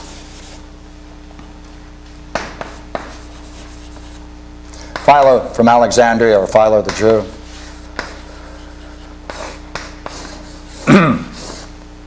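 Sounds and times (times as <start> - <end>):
chalk writing on blackboard: 0.0 - 0.6, 2.4 - 4.3, 6.8 - 11.7
steady low hum: 0.0 - 12.0.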